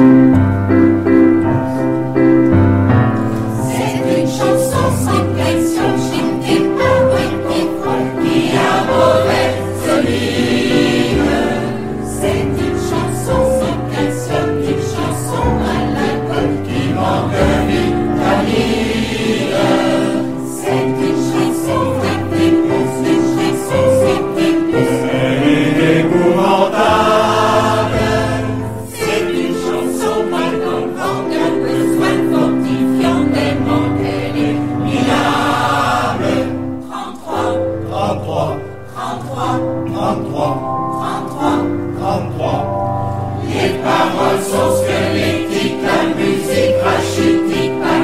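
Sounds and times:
choir singing: 0.8 - 48.0.

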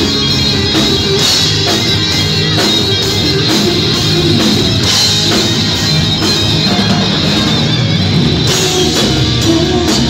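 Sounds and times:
bass guitar: 0.0 - 10.0
distorted electric guitar lead: 0.0 - 10.0
drum kit: 0.0 - 10.0.

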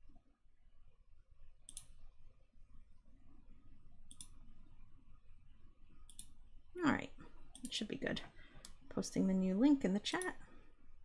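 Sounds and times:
computer mouse clicks: 1.6 - 2.1, 4.0 - 4.5, 6.0 - 6.4, 7.5 - 7.8, 8.6 - 8.8.

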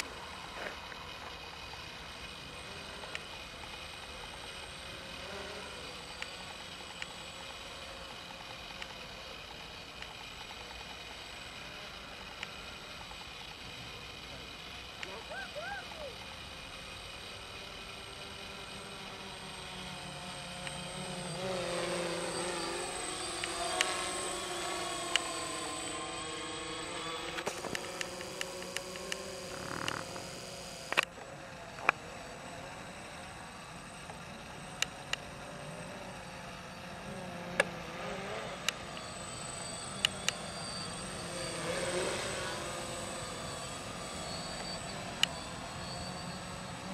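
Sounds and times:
drone propellers buzzing: 0.0 - 46.9
sharp clicks: 27.2 - 31.2.

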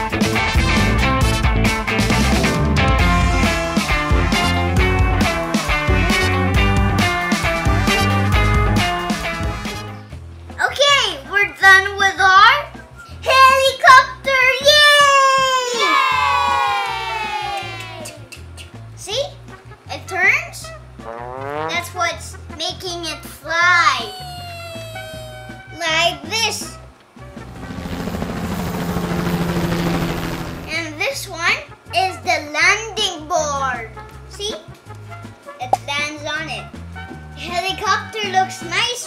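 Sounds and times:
background music with steady beat: 0.0 - 13.2, 15.0 - 28.7, 33.1 - 38.9
child calling excitedly: 12.2 - 18.3, 21.4 - 26.8
child cheering: 13.3 - 18.3, 23.6 - 26.7
helicopter rotor chop: 27.2 - 31.0.

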